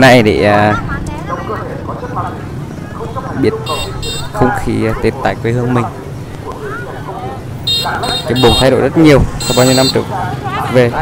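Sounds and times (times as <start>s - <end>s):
motorbike engines rumbling: 0.0s - 11.0s
people talking: 0.0s - 11.0s.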